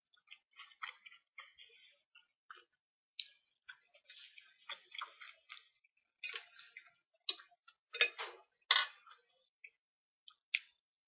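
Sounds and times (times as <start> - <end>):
chewing crunchy food: 0.0 - 10.8.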